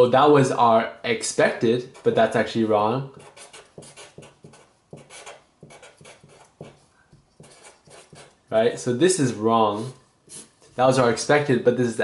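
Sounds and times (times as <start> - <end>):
marker scratching on paper: 3.2 - 8.4, 9.8 - 10.8.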